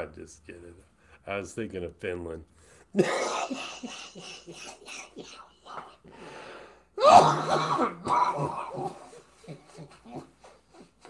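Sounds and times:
man coughing: 3.0 - 5.5, 7.0 - 9.9.

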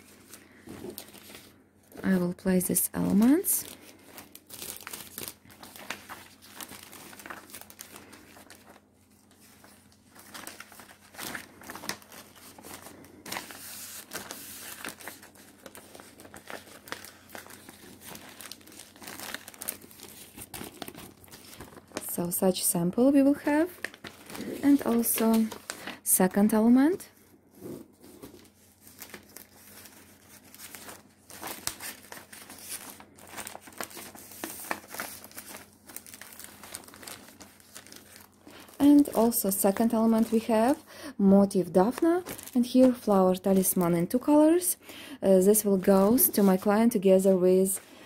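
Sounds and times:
plastic sheet crinkling: 0.0 - 44.6, 45.4 - 47.9
plastic pocket crinkling: 42.2 - 43.0.

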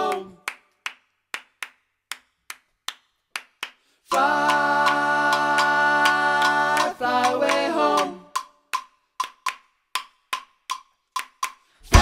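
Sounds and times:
sharp hand claps: 0.1 - 12.0.

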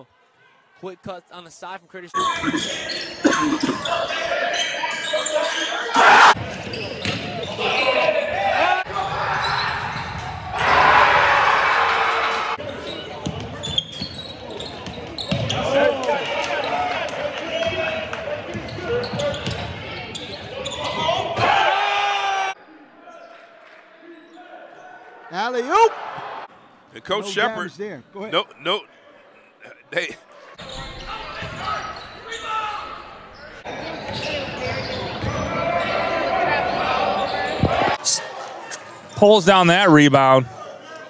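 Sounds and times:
crowd voices and shouts: 0.0 - 27.8, 28.4 - 41.0.

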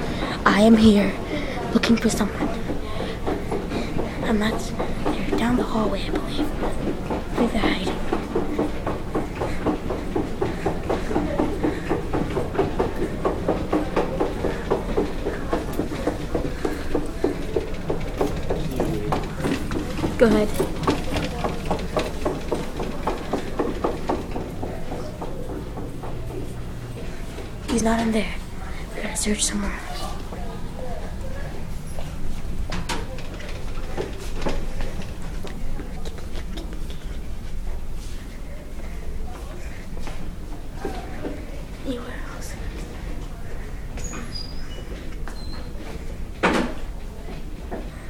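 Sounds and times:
quick footsteps on hard floor: 0.5 - 28.6.

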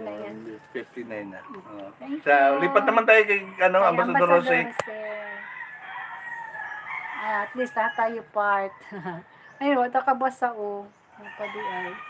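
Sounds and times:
rooster crowing: 5.1 - 8.9, 11.2 - 12.0.

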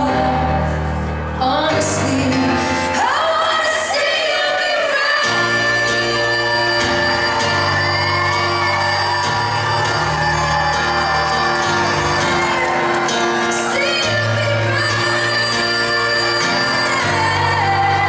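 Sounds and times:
piano chords: 0.0 - 18.0
woman singing: 0.0 - 18.0.

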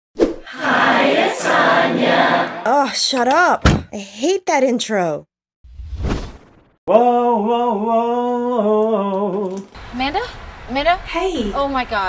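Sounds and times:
group singing a cappella chord: 0.5 - 2.7.

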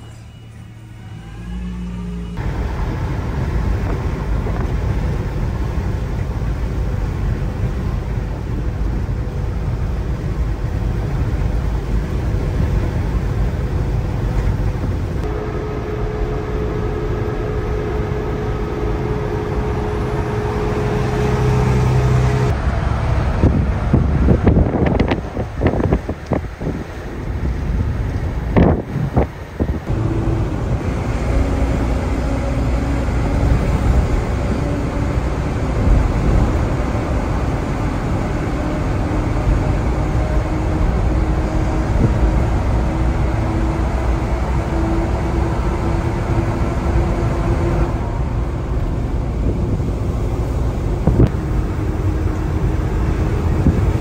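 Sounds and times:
truck engine and road noise: 0.0 - 54.0.

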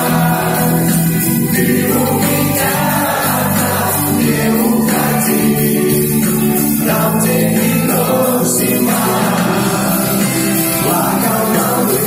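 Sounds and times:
band playing pop song: 0.0 - 12.0
voices singing together: 0.0 - 12.0.

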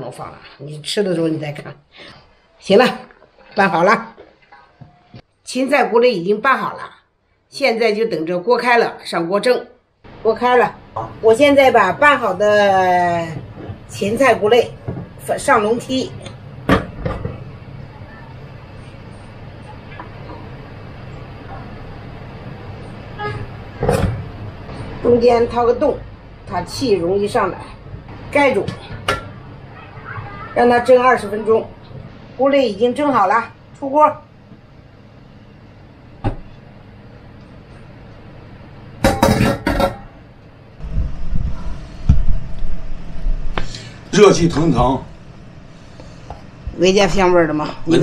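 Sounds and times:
pot boiling: 10.1 - 33.8.

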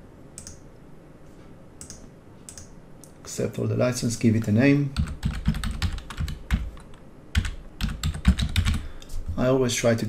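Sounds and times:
typing on a computer keyboard: 5.0 - 8.8.

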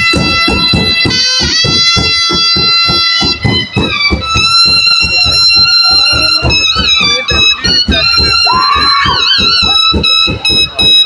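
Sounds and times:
drums beating fast rhythm: 0.0 - 11.0
shrill wind instrument trilling: 0.0 - 11.0.

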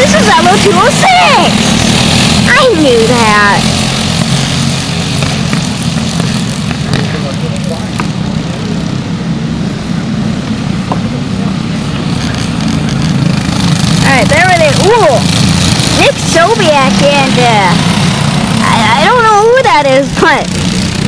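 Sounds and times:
racing kart engines droning: 0.0 - 21.0.

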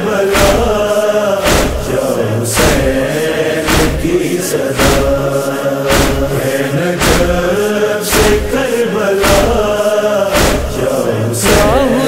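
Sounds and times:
male chorus chanting: 0.0 - 12.0
steady drum beat: 0.3 - 12.0.

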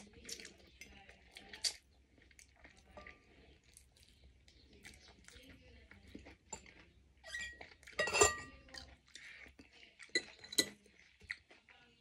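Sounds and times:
cutlery clinking on ceramic bowl: 2.9 - 3.3, 6.5 - 8.7, 10.1 - 10.8.

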